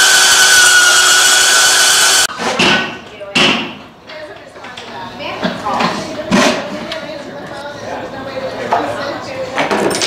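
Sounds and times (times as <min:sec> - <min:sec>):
people talking in background: 0:02.4 - 0:10.0.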